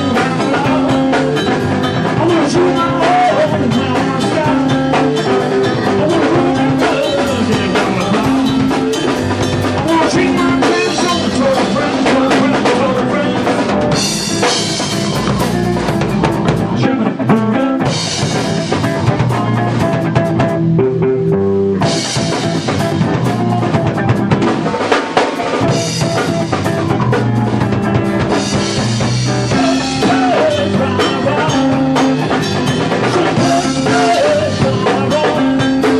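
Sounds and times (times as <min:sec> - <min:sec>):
drum kit: 0:00.0 - 0:35.9
electric guitar: 0:00.0 - 0:35.9.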